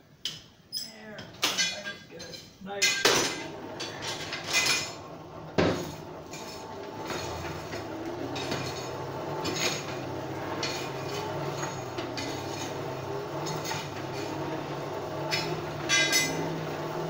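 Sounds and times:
metal tools clanking and scraping: 0.7 - 5.0, 15.3 - 16.6.

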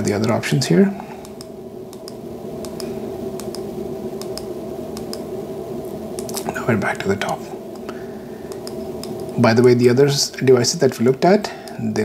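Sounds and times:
steady low hum: 0.0 - 12.0
light regular clicks of controls: 1.2 - 5.3, 6.2 - 6.5, 8.5 - 9.4, 10.8 - 12.0.

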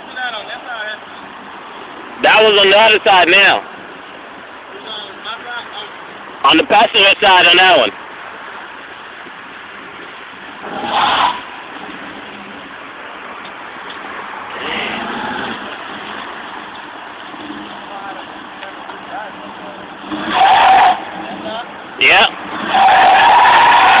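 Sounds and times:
tyres spinning on pavement: 7.9 - 24.0.

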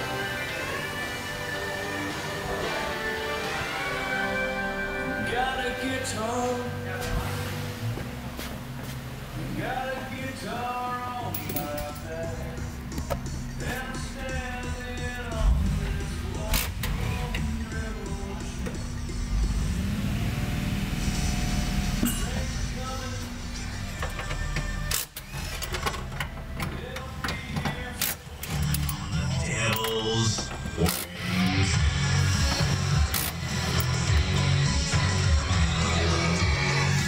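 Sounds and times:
song on car stereo: 0.0 - 37.0
car engine idling: 12.0 - 24.9.

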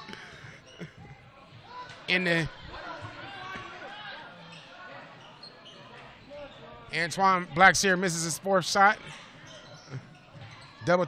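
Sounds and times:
distant crowd and player voices: 0.0 - 11.0.

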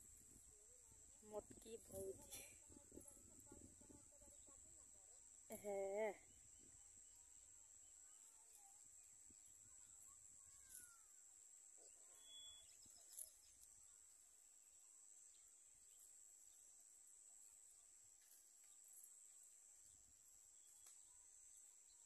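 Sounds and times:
high-pitched insect chorus: 0.0 - 22.0
faint bird chirps: 6.2 - 16.7.

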